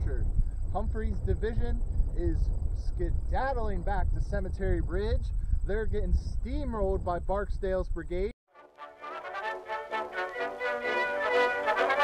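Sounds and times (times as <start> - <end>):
brass fanfare: 8.5 - 12.0.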